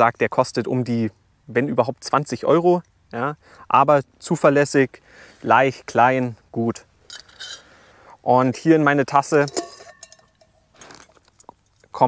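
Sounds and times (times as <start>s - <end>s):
metal mug clink ringing: 7.1s - 7.7s, 9.2s - 10.7s.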